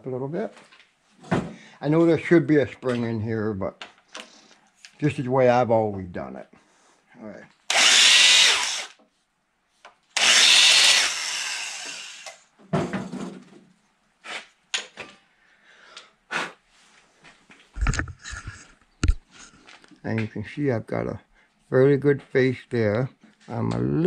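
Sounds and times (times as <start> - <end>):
electric drill grinding valve seat: 7.7 - 9.0, 10.2 - 12.4.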